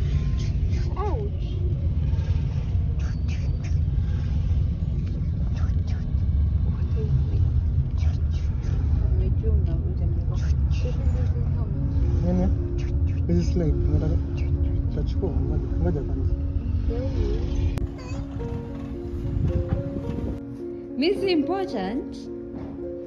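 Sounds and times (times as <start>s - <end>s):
car cabin road rumble: 0.0s - 20.5s.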